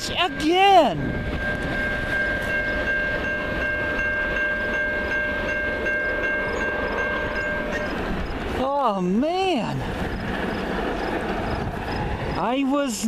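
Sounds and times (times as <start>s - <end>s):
train rumbling: 0.0s - 13.0s.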